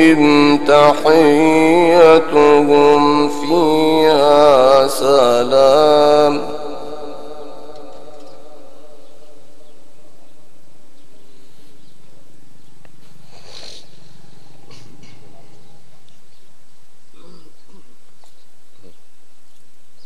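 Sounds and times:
person reciting with echo: 0.0 - 9.8.

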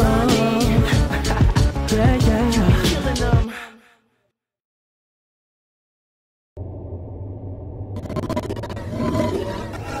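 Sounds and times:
rasping roar-like sound: 8.0 - 10.0.

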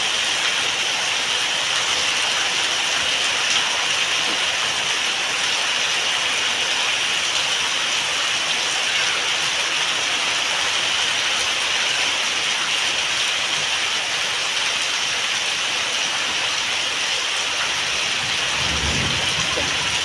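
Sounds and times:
heavy rain on roof and paving: 0.0 - 20.0.

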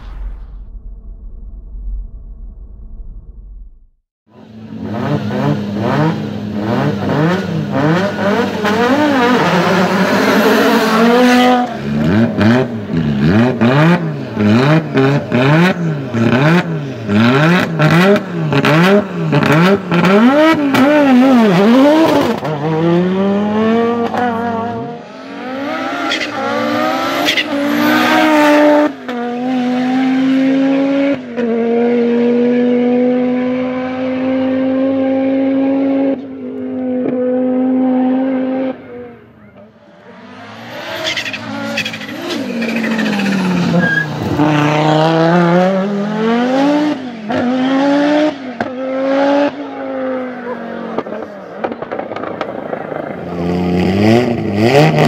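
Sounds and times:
rally car engine revving: 4.4 - 55.0.

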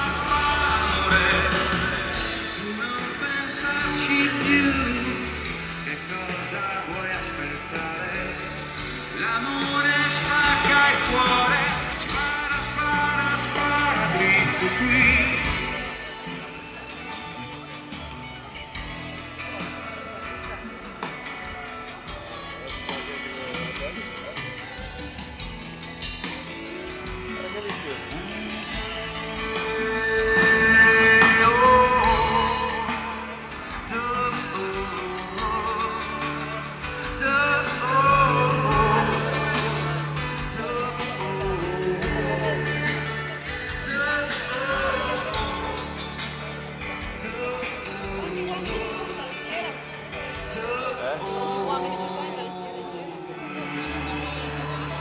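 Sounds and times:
distant live band playing: 0.0 - 55.0.

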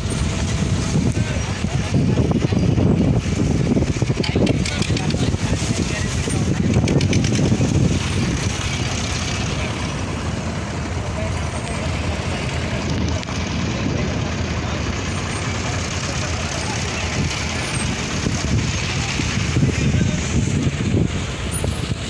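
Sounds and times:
people's voices: 0.0 - 22.0
truck engines rumbling: 0.0 - 22.0.

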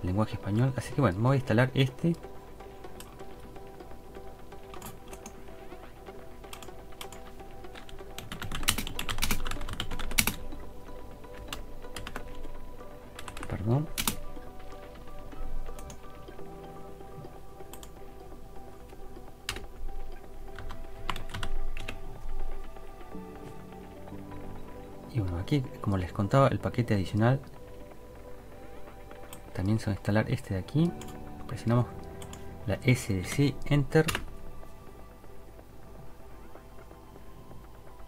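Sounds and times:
computer keyboard typing: 4.7 - 5.5, 6.4 - 10.6, 11.3 - 12.6, 13.2 - 16.1, 17.6 - 18.0, 19.5 - 19.7, 20.5 - 22.4, 32.0 - 32.5.

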